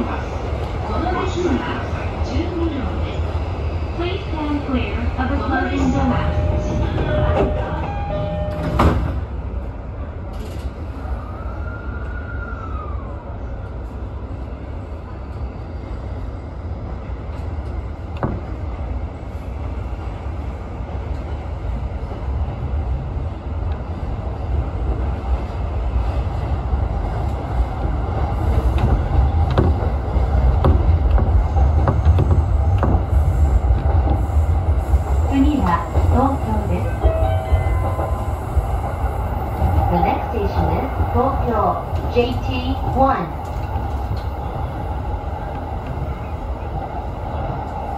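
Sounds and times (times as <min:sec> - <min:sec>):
train running gear rumble: 0:00.0 - 0:11.4, 0:13.6 - 0:47.9.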